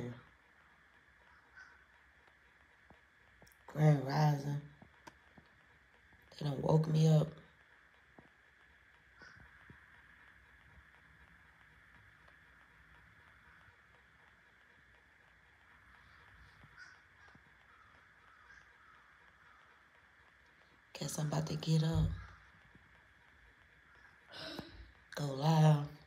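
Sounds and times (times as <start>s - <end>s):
faint bird calls: 0.0s - 2.6s, 9.0s - 25.1s
steady low hiss: 0.0s - 26.0s.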